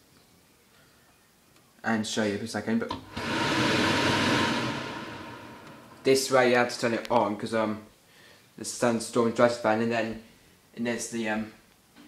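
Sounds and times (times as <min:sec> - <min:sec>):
extractor fan running: 0:03.0 - 0:06.6.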